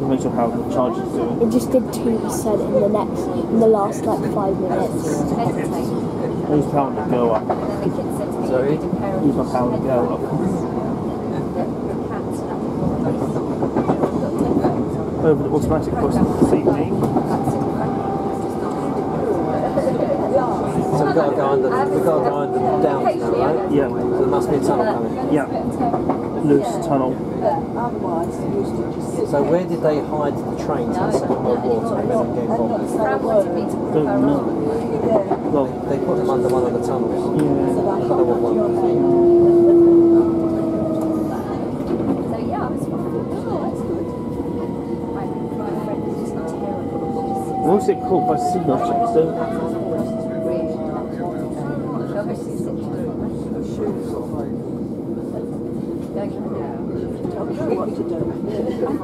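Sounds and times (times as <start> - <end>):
train wheels rumbling on rail: 0.0 - 59.0.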